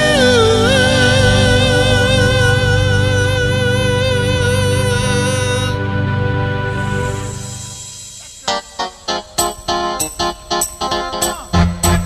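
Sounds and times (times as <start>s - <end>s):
man singing with vibrato: 0.0s - 5.9s
instrumental accompaniment with beat: 7.0s - 12.0s.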